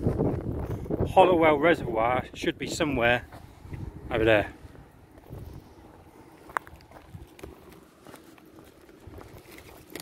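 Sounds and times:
faint footsteps on tarmac: 0:02.5 - 0:10.0.

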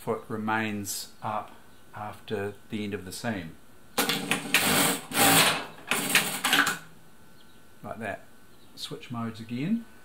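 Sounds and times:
sewing machine stitching: 0:04.0 - 0:06.8.

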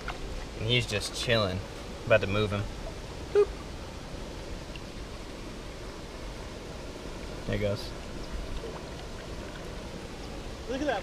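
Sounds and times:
faint water sounds: 0:00.0 - 0:11.0.

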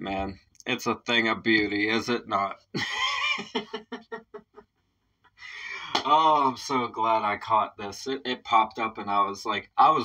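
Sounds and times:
man laughing: 0:02.7 - 0:04.8.

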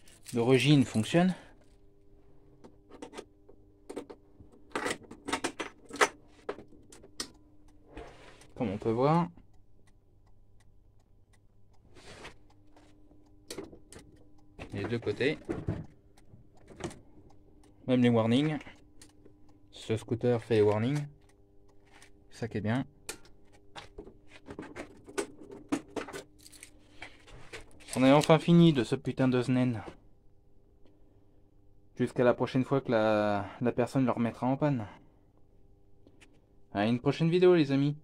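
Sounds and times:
faint steady hum: 0:00.0 - 0:38.0
flasher relay clicking: 0:08.4 - 0:22.4.

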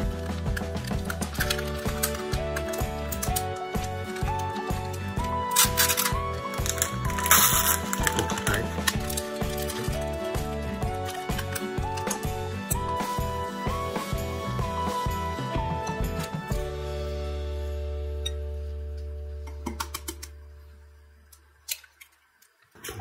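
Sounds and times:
background music with steady beat: 0:00.0 - 0:20.9.

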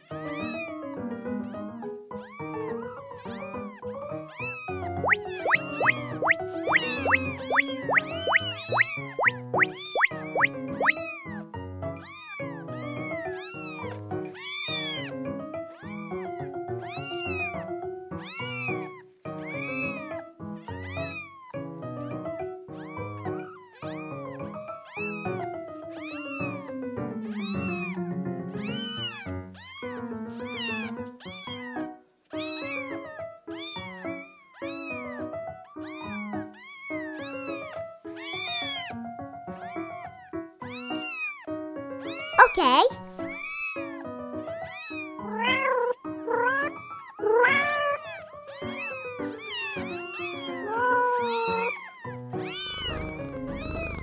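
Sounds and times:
kitten meowing: 0:00.0 - 0:54.0
light background music: 0:00.0 - 0:54.0.

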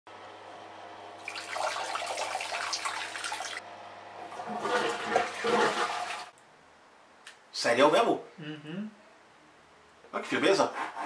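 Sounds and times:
toilet flushing: 0:01.2 - 0:03.6, 0:04.2 - 0:06.3.

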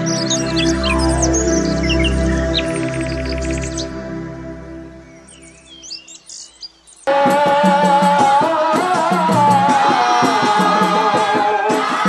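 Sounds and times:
bird chirps: 0:00.0 - 0:04.0, 0:04.9 - 0:07.1
intro music of held tones: 0:00.0 - 0:06.2
drums and rattles: 0:07.1 - 0:12.0
group singing: 0:07.1 - 0:12.0.

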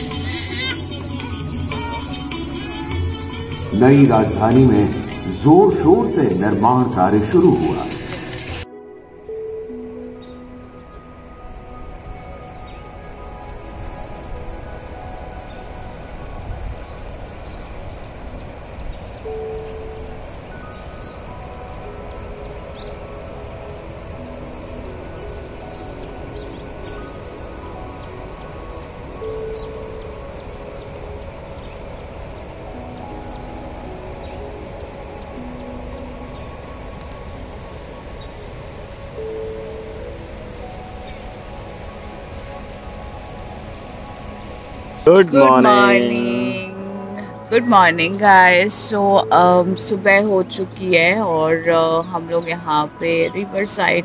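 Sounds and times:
insects chirping in a trill: 0:00.0 - 0:54.0
soft background music: 0:00.0 - 0:54.0.

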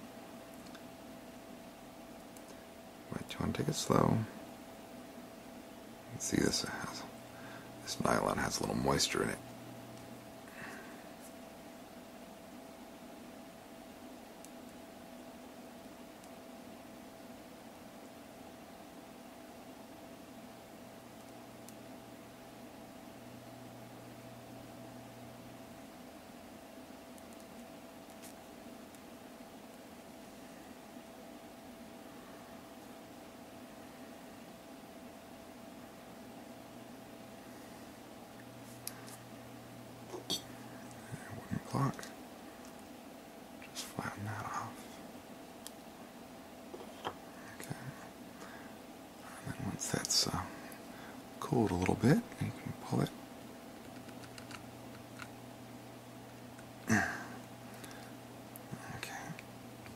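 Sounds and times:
faint constant tone: 0:00.0 - 0:59.9.

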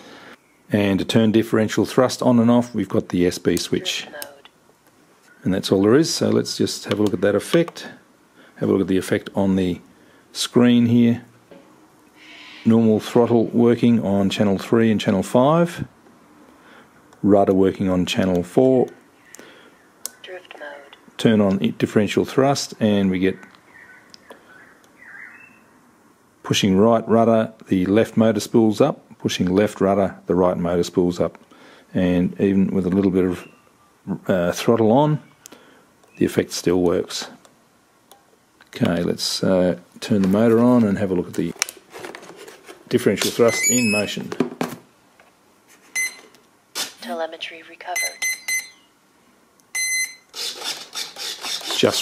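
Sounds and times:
electronic beeps: 0:43.5 - 0:44.2, 0:48.0 - 0:48.9.

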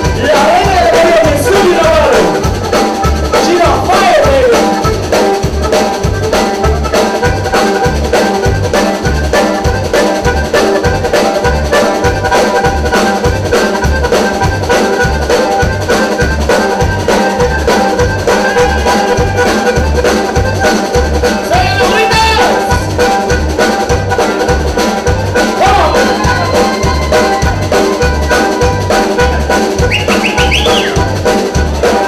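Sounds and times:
button accordion melody: 0:00.0 - 0:32.0
congas: 0:00.0 - 0:32.0
drum kit: 0:00.0 - 0:32.0
electric bass: 0:00.0 - 0:32.0.

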